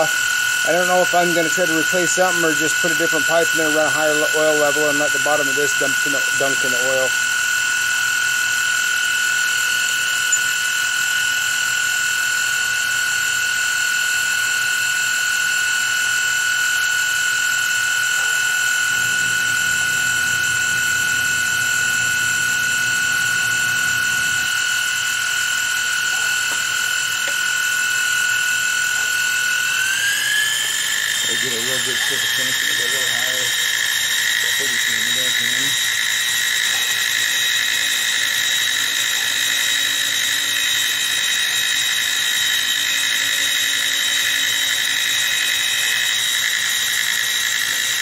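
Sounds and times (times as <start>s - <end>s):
milling machine spindle whine: 0.0s - 48.0s.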